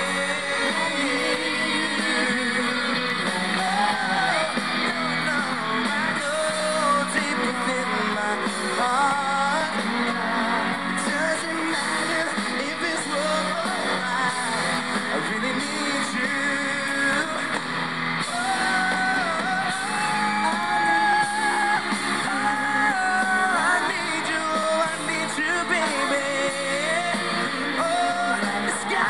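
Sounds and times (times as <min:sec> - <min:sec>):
man singing into microphone: 0:00.0 - 0:17.6, 0:18.2 - 0:29.0
backing band with guitar: 0:00.0 - 0:29.0.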